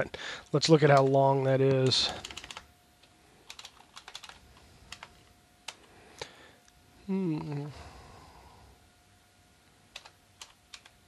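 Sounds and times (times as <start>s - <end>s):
computer keyboard typing: 0.8s - 2.7s, 3.4s - 5.9s, 9.9s - 11.0s.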